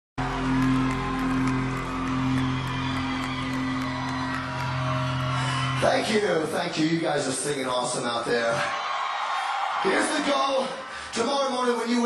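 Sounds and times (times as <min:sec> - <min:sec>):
rock band sustained chord: 0:00.2 - 0:05.8
crowd noise: 0:00.2 - 0:12.0.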